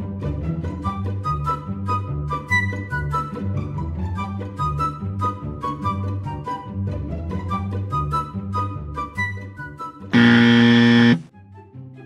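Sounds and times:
soft background music: 0.0 - 10.2, 11.3 - 12.0
loud flat buzzer: 10.2 - 11.3.

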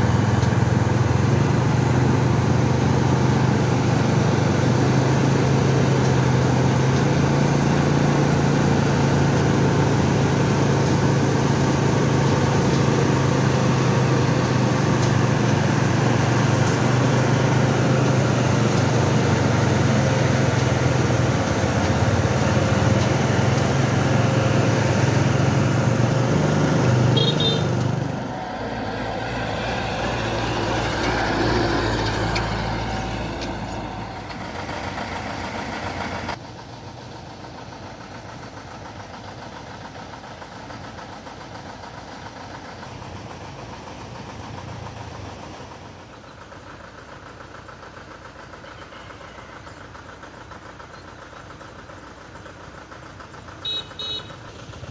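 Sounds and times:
truck diesel engine humming: 0.0 - 54.9.

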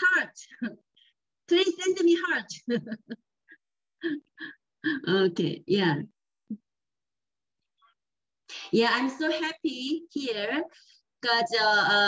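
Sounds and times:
woman laughing: 2.6 - 5.0.

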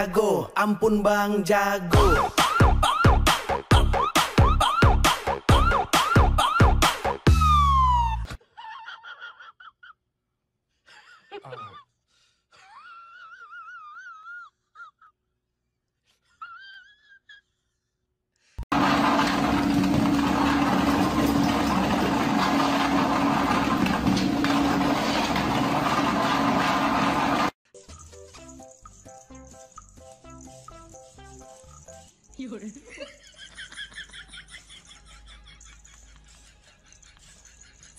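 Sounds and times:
treadmill motor running: 18.7 - 27.6.

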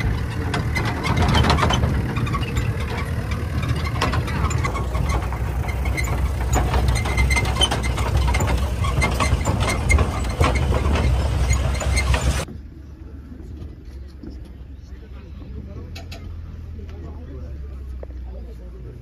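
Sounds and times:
vehicle body rattling: 0.0 - 12.5
jeep engine rumbling: 0.0 - 19.0.

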